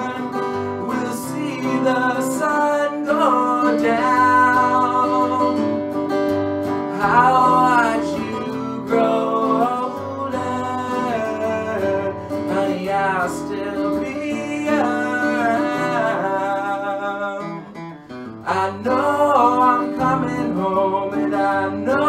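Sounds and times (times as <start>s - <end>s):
man singing: 0.0s - 5.8s, 6.9s - 17.8s, 18.4s - 22.0s
acoustic guitar: 0.0s - 22.0s.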